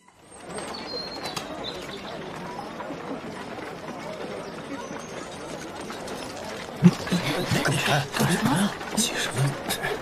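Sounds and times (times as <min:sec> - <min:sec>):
murmur of distant voices: 0:00.1 - 0:10.0.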